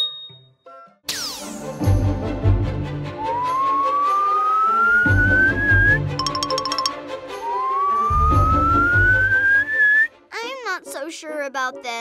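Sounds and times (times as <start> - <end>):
rising slide whistle: 3.2 - 10.1.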